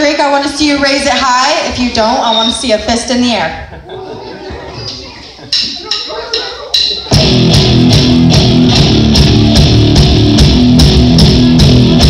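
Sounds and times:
live rock band playing: 6.0s - 12.0s.

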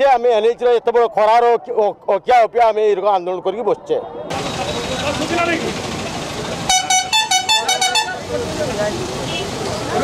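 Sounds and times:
vehicle horn tooting: 6.7s - 8.3s.

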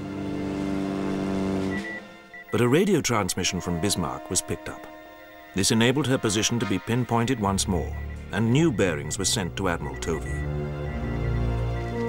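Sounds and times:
biplane engine drone: 0.0s - 12.0s
high morse code beep: 1.7s - 12.0s.

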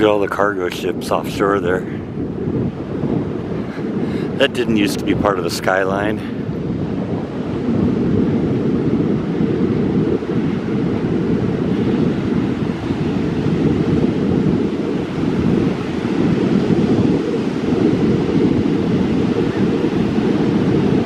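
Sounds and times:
surf breaking on beach: 0.0s - 21.0s
wind across microphone: 0.0s - 21.0s.

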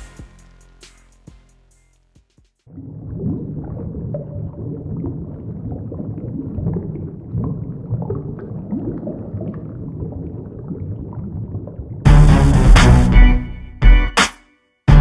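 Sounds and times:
underwater bubbling: 2.7s - 12.1s.

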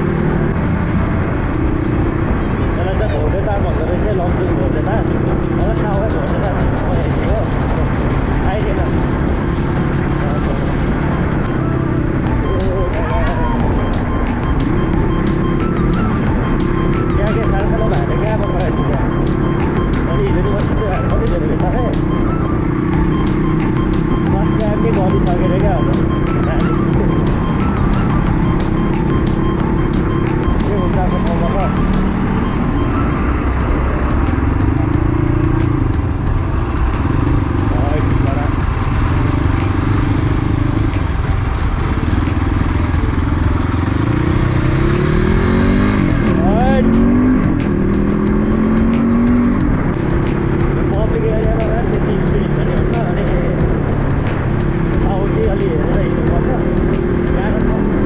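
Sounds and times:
dirt bike engine revving: 13.4s - 58.0s.

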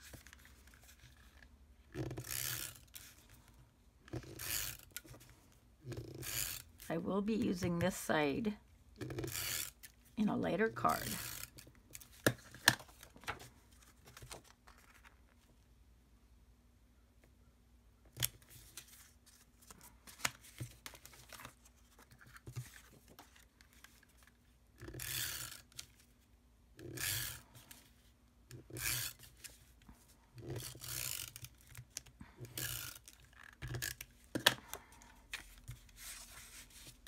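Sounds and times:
paper rustling and rubbing: 35.4s - 37.0s.

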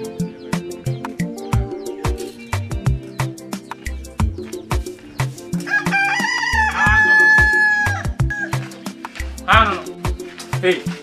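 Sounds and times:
music with steady drum beat: 0.0s - 11.0s
rooster crowing: 5.6s - 8.7s.

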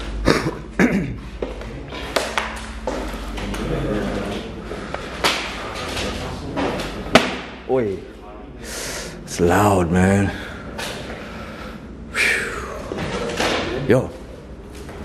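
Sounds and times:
people talking quietly: 3.1s - 15.0s.

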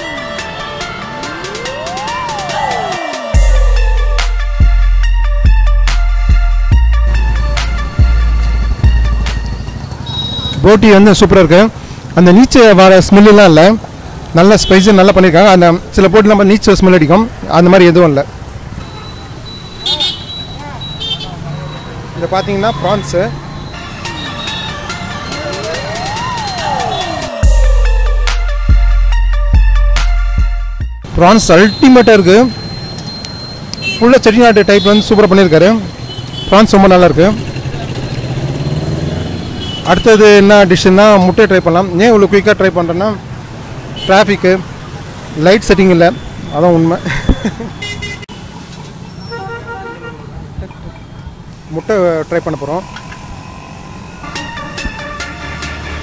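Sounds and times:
road traffic engine hum: 0.0s - 30.4s, 31.0s - 56.0s
vehicle horn honking: 10.0s - 10.7s, 18.8s - 21.4s, 33.8s - 35.2s, 39.2s - 40.4s, 47.7s - 48.5s, 49.1s - 50.3s.

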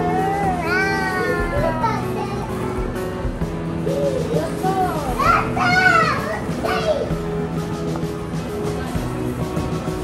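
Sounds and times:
background music: 0.0s - 10.0s
young children calling out: 5.1s - 7.1s.

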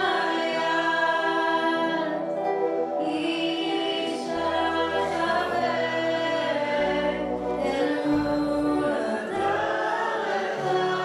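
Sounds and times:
woman singing: 0.0s - 2.2s, 3.0s - 11.0s
voices singing along: 0.0s - 11.0s.

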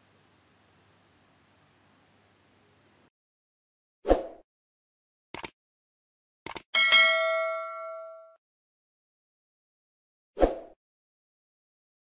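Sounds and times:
quick double click: 5.4s - 5.6s, 6.4s - 6.7s
bell chime ringing: 6.8s - 8.4s.

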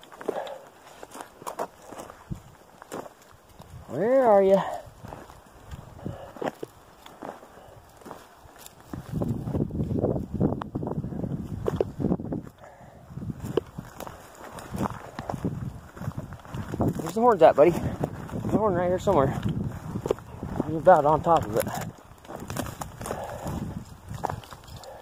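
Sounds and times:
twigs snapping: 0.0s - 10.8s, 11.5s - 12.7s, 13.3s - 25.0s
branches scraping: 0.0s - 25.0s
footsteps crunching through brush: 0.0s - 25.0s.

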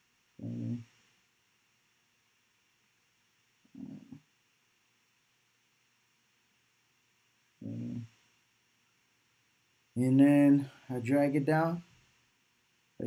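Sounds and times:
man humming or grunting: 0.4s - 0.8s, 7.6s - 8.1s.

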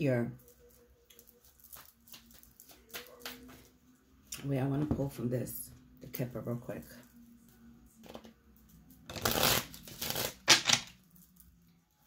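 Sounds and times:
deck of cards shuffling: 9.1s - 10.9s.

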